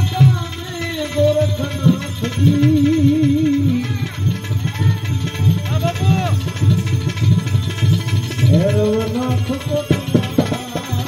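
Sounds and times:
hand cymbals clinking: 0.0s - 11.0s
hand drum beat: 0.0s - 11.0s.

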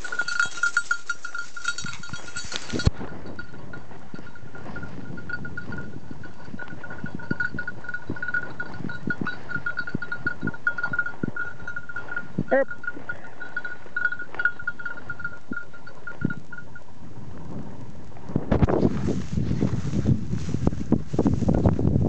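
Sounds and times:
footsteps through dry grass: 0.0s - 9.9s, 18.1s - 22.0s
collar bell jingling: 0.0s - 16.9s.

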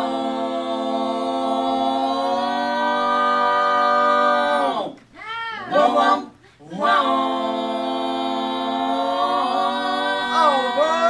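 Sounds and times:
vocal group holding a chord: 0.0s - 5.0s, 5.7s - 11.0s.

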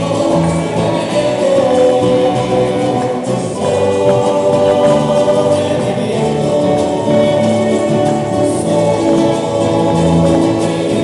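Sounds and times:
voices singing together: 0.0s - 11.0s
electric bass: 2.1s - 8.1s
sustained melody: 3.9s - 6.2s.

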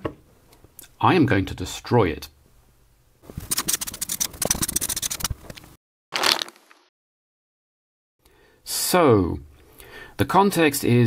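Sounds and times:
marker scratching on paper: 3.4s - 5.4s.

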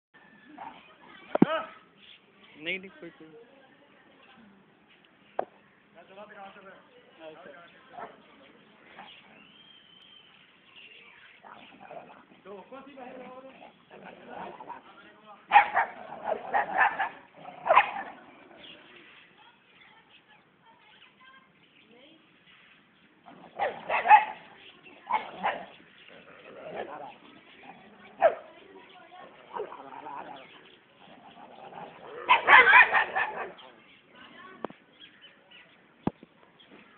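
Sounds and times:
dog barking: 15.5s - 18.2s, 23.5s - 24.5s, 25.1s - 25.7s, 28.2s - 28.5s, 32.2s - 33.6s.

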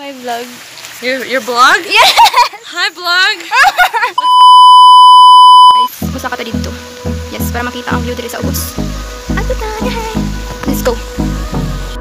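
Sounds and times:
censor bleep: 4.2s - 5.9s.

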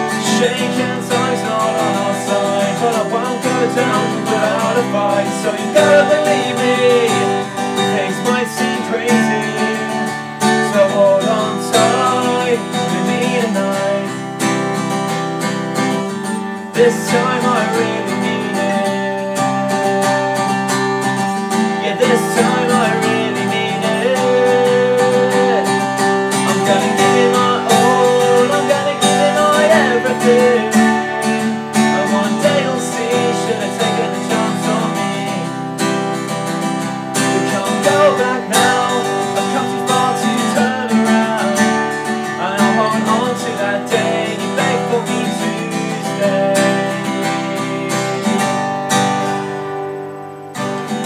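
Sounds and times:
acoustic guitar strumming chords: 0.0s - 51.0s.

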